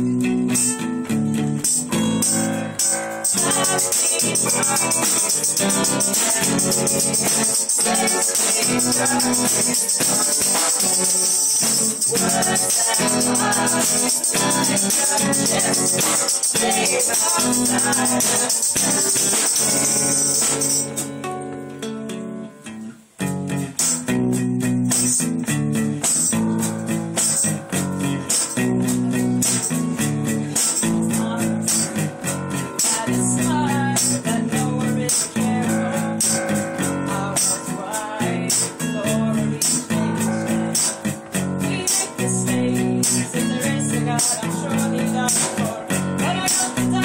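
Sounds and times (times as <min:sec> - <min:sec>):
guitars strumming chords: 0:00.0 - 0:47.0
sharp high percussion: 0:01.6 - 0:21.2, 0:23.3 - 0:34.4, 0:35.0 - 0:38.8, 0:39.6 - 0:47.0.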